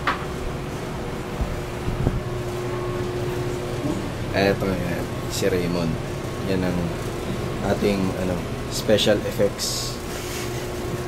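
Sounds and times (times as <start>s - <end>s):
office room hum: 0.0s - 11.0s.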